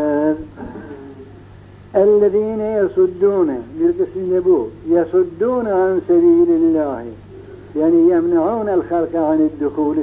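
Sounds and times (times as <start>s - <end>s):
steady low hum: 0.0s - 10.0s
man speaking: 1.9s - 10.0s.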